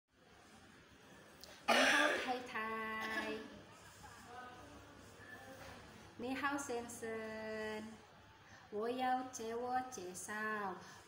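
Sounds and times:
faint room hiss: 0.1s - 11.0s
woman coughing: 1.7s - 3.5s.

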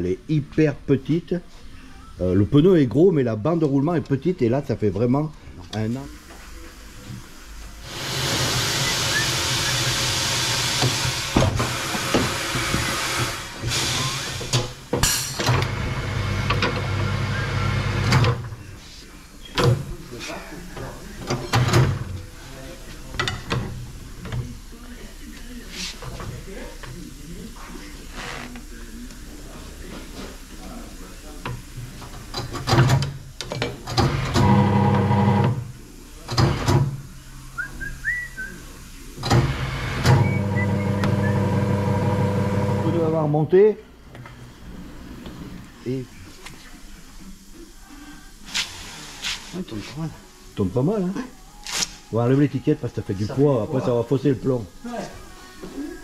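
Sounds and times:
tyre machine hissing and humming: 6.9s - 14.9s, 34.0s - 35.5s, 39.2s - 43.2s, 48.4s - 49.8s
machine motor humming: 39.3s - 43.1s.

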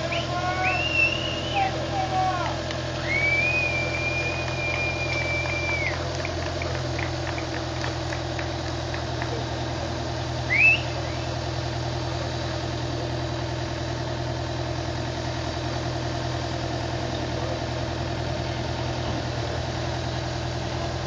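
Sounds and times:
short rising whistle: 0.0s - 1.7s, 3.0s - 6.0s, 10.5s - 11.3s
diesel engine idling: 0.0s - 21.0s.

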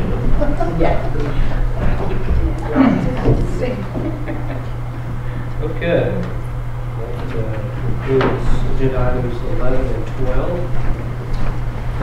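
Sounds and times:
indistinct talking: 0.0s - 10.8s
low electrical hum: 0.0s - 12.0s.

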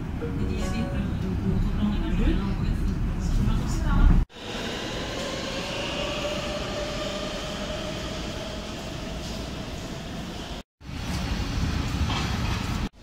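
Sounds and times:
train rumbling inside carriage: 0.0s - 13.0s.

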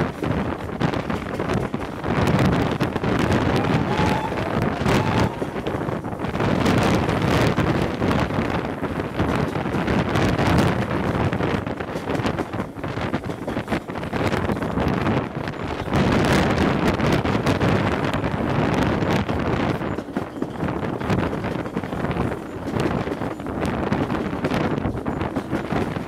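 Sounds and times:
steam train running: 0.0s - 26.0s
wind buffeting microphone: 0.0s - 26.0s.

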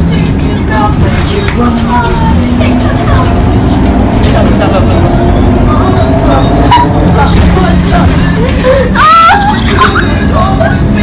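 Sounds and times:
bus engine and road rumble: 0.0s - 11.0s
people talking: 0.0s - 11.0s.

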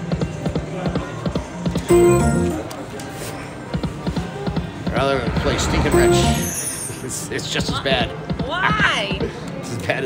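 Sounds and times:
slot machine reel ticks: 1.9s - 2.6s
held musical tone: 1.9s - 2.8s, 5.8s - 7.0s
low electronic music: 1.9s - 2.8s, 5.8s - 6.8s.

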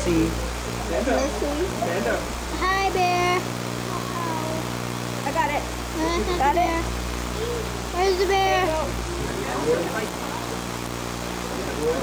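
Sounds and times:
faint voices talking: 0.0s - 12.0s
low hum: 0.0s - 12.0s.

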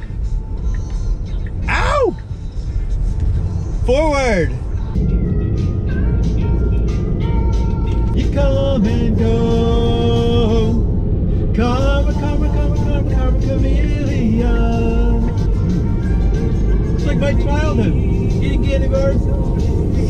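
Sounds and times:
pop song on car radio: 0.0s - 20.0s
road rumble inside car: 0.0s - 20.0s.

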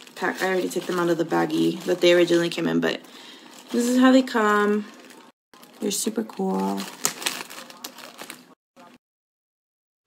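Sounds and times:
plastic bag crinkling: 0.0s - 9.0s.

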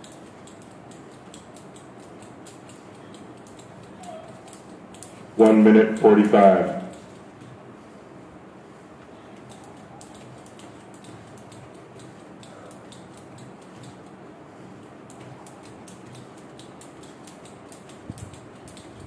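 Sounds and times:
skipping rope ticking on floor: 0.0s - 7.6s, 9.4s - 14.2s, 14.8s - 19.0s.

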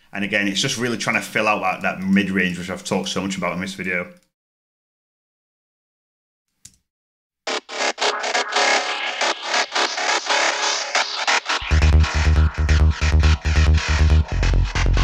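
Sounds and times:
fast rhythmic synth bass: 7.5s - 15.0s
deep pulsing kick and sub-bass: 11.6s - 15.0s.

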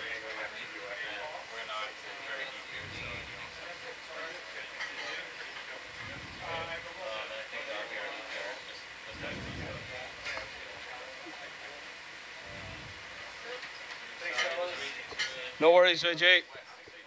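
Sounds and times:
faint background voices: 0.0s - 15.6s
steady hiss of room ambience: 0.0s - 17.0s
soft low rumbles: 2.7s - 3.7s, 5.9s - 7.0s, 9.1s - 10.7s, 12.4s - 13.3s.

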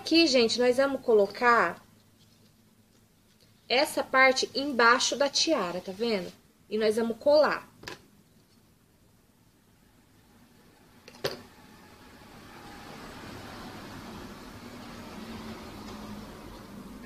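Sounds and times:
steady mechanical noise with hum: 0.0s - 17.0s.

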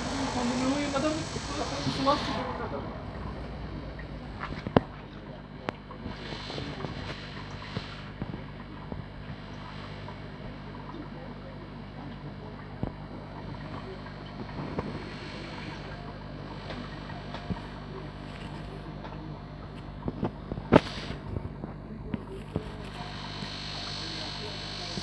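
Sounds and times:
aquarium equipment humming: 0.0s - 25.0s.

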